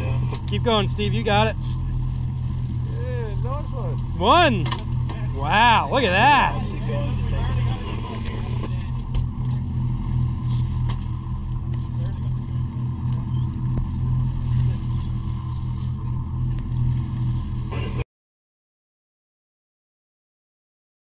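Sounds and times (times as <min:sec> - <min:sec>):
boat engines droning: 0:00.0 - 0:18.0.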